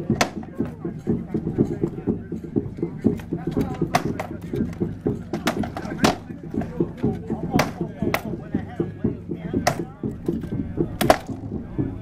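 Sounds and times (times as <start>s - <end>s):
murmur of voices: 0.0s - 12.0s
swords striking shields: 0.1s - 0.5s, 5.3s - 6.3s, 7.6s - 8.3s.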